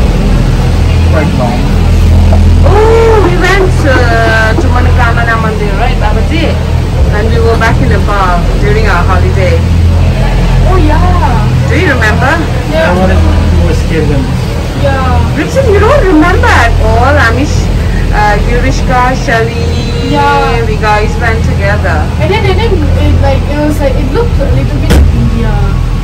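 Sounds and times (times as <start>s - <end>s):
cable car machinery hum: 0.0s - 26.0s
people talking: 0.7s - 26.0s.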